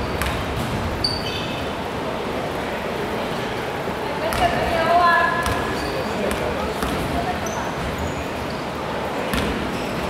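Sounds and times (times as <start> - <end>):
voices in a large hall: 0.0 - 10.0.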